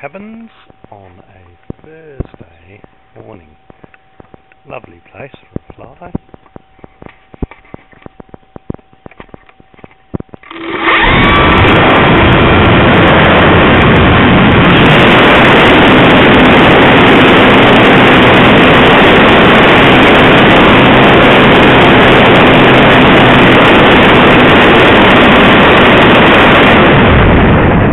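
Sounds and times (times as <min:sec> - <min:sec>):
model aircraft motor and propeller: 0:06.0 - 0:27.2.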